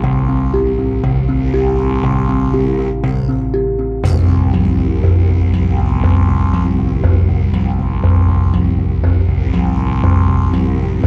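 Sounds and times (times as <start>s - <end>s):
didgeridoo drone: 0.0s - 11.0s
tongue drum notes: 0.0s - 11.0s.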